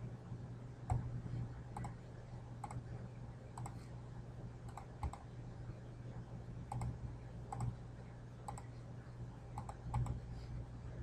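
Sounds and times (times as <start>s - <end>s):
low steady hum: 0.0s - 11.0s
computer mouse clicking: 1.7s - 2.0s, 2.6s - 2.8s, 3.6s - 3.8s, 4.7s - 5.3s, 6.7s - 7.8s, 8.5s - 8.7s, 9.6s - 10.2s.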